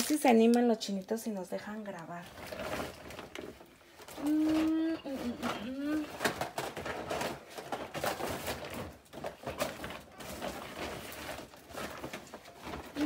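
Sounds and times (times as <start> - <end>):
small objects clicking: 0.0 - 0.7
packaging rustling: 0.0 - 1.0, 1.9 - 13.0.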